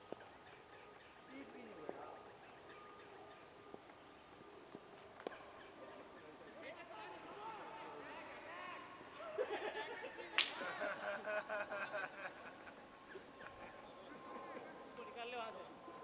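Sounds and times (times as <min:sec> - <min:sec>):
players calling and shouting: 0:00.0 - 0:16.0
sharp smack: 0:10.4 - 0:10.7.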